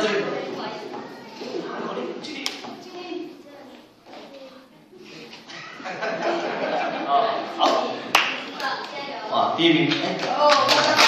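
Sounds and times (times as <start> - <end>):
hand claps: 8.1 - 9.0, 9.9 - 11.0.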